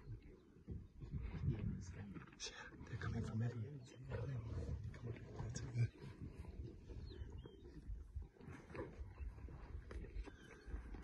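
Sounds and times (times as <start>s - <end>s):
bird chirp: 5.4s - 11.0s.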